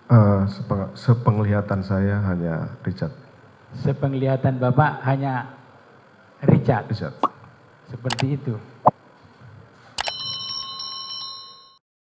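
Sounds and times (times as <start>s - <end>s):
electronic bell ring trilling: 10.0s - 11.8s.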